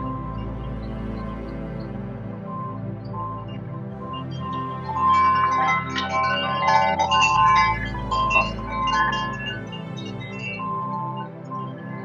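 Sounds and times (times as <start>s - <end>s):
low drone: 0.0s - 11.5s
chiming bell-like notes: 4.0s - 12.0s.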